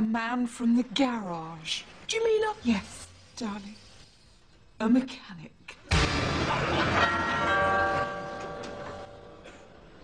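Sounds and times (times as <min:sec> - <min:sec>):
doorbell chime ringing: 0:07.0 - 0:09.4.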